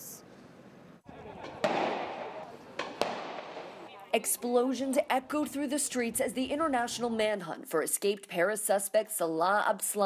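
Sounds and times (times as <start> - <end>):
explosions echoing: 1.3 - 3.9.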